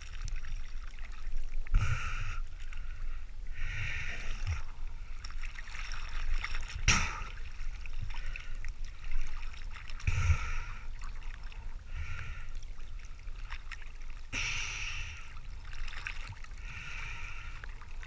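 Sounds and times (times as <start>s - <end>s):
sea water sloshing: 0.0s - 18.0s
steady low rumble: 0.0s - 18.0s
water splashes: 0.0s - 18.0s.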